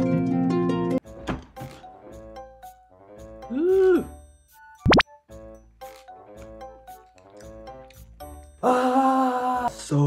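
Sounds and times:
light background music: 0:00.0 - 0:10.0.

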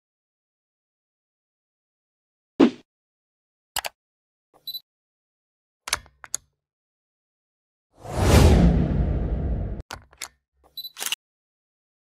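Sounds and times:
whoosh with deep rumble: 0:08.0 - 0:09.8.

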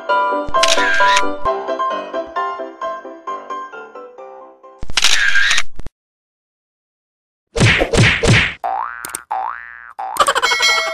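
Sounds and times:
sharp click: 0:00.6 - 0:01.3.

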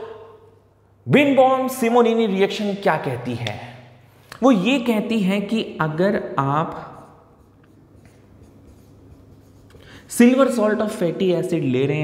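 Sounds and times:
marker pen writing on whiteboard: 0:06.7 - 0:11.2.

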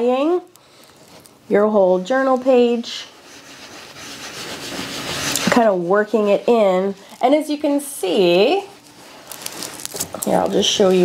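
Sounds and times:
towel rubbing on paper: 0:02.9 - 0:06.7.

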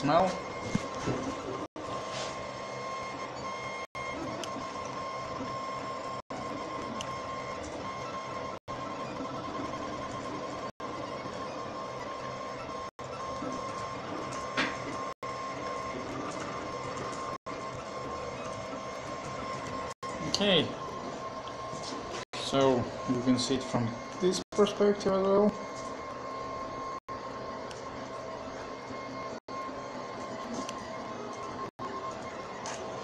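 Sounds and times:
stepper motors whining: 0:00.0 - 0:33.0.

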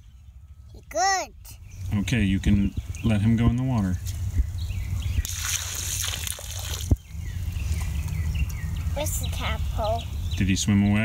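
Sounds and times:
water splashing into pond: 0:05.2 - 0:07.2.

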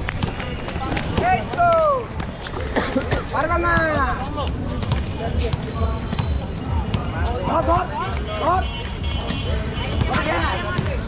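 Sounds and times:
skate wheels rolling on pavement: 0:00.0 - 0:06.8.

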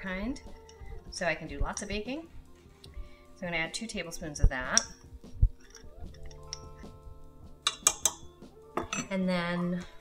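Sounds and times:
soft background music: 0:00.0 - 0:10.0
metal spoon clinking: 0:00.4 - 0:00.9, 0:04.7 - 0:05.0, 0:05.6 - 0:06.9, 0:07.6 - 0:09.2.

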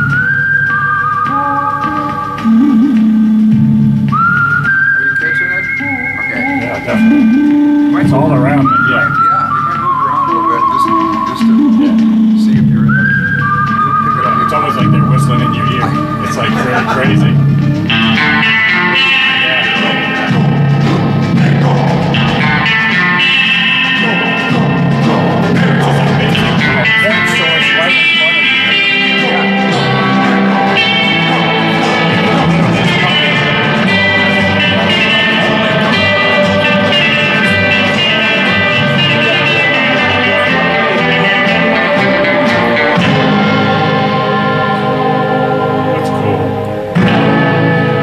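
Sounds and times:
rock music with guitar: 0:00.0 - 0:48.0
low bass line: 0:01.3 - 0:04.6, 0:05.9 - 0:48.0.

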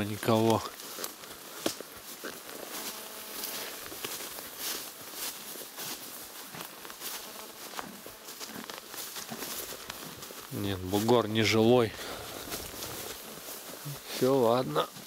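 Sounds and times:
grass rustling and swishing: 0:00.0 - 0:15.0
hoof steps on grass: 0:00.0 - 0:15.0.

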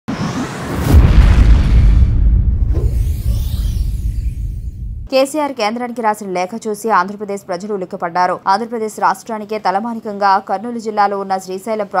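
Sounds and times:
low rumble: 0:00.1 - 0:05.1
deep boom: 0:00.4 - 0:05.1.

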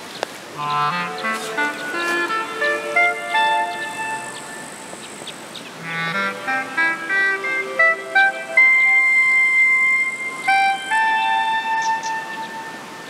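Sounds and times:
solo clarinet with echo: 0:00.6 - 0:04.9, 0:05.8 - 0:13.0.

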